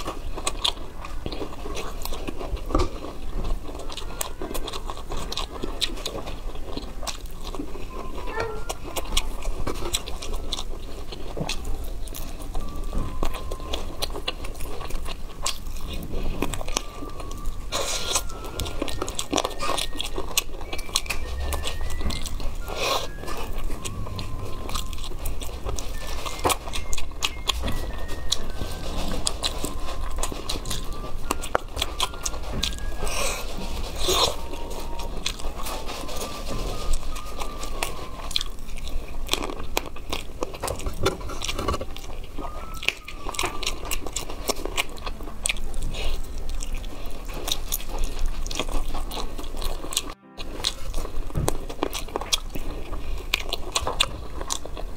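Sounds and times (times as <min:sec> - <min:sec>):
chewing chicken wings: 0:00.0 - 0:54.9
small crunches: 0:00.0 - 0:54.9.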